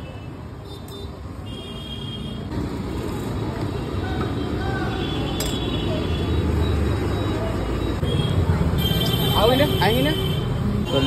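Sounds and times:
passing vehicles rumble: 0:02.4 - 0:11.0.

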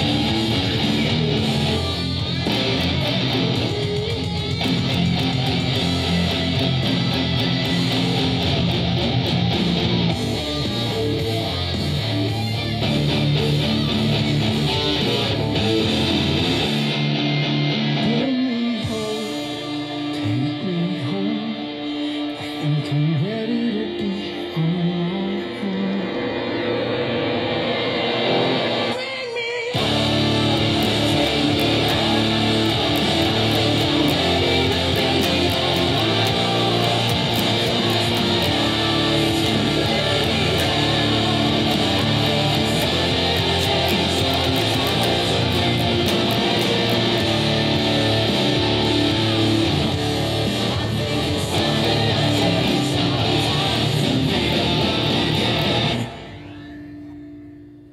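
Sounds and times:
heavy metal band with distorted guitar: 0:00.0 - 0:57.0.

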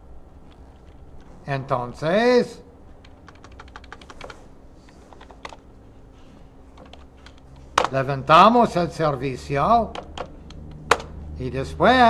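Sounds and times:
typing on computer keyboard: 0:03.0 - 0:05.6, 0:06.8 - 0:08.0, 0:09.9 - 0:11.1.

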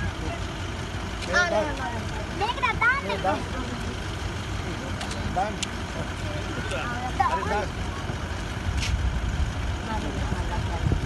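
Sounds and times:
people talking: 0:09.8 - 0:11.0.

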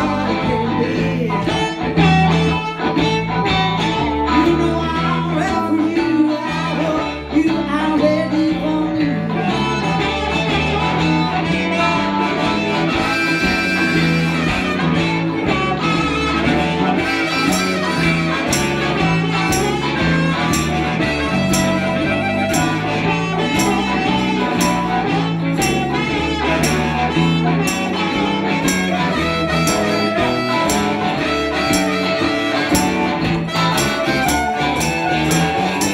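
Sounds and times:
bass line: 0:00.0 - 0:35.9
harmonica: 0:00.0 - 0:35.9
live band with electric guitars: 0:00.0 - 0:35.9.

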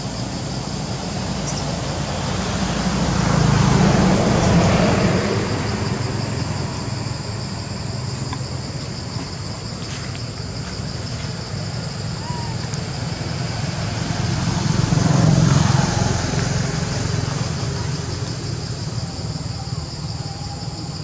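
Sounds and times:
motor vehicle passing: 0:13.0 - 0:20.3.

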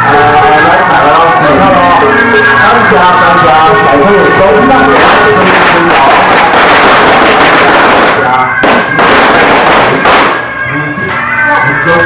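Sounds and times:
music with pitched melody: 0:00.0 - 0:06.4, 0:09.9 - 0:12.0
sharp bangs: 0:01.8 - 0:11.2
firecrackers crackling: 0:01.9 - 0:11.7.

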